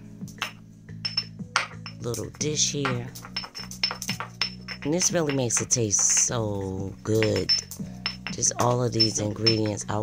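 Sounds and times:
background music: 0:00.0 - 0:10.0
stone pestle pounding in mortar: 0:00.4 - 0:10.0.

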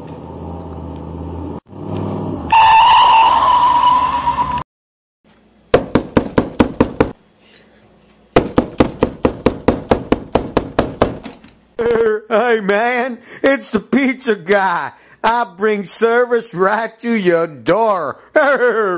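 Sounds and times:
car horn blast: 0:02.5 - 0:03.5
rapid knocking on door: 0:05.8 - 0:07.2, 0:08.4 - 0:11.3.

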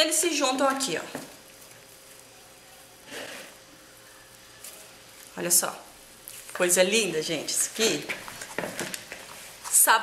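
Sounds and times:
hands kneading sticky dough: 0:00.0 - 0:10.0.

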